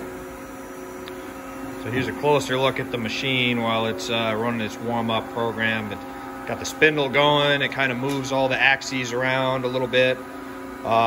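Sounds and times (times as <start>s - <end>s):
machine humming with steady tones: 0.0s - 11.0s.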